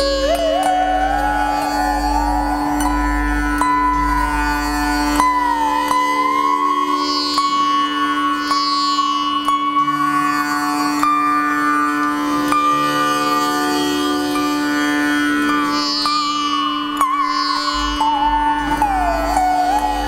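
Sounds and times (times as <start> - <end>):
plucked veena notes sliding: 0.0 - 20.0.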